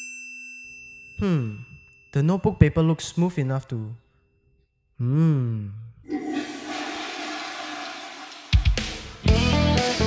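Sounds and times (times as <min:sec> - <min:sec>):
toilet flushing: 0:06.1 - 0:09.3.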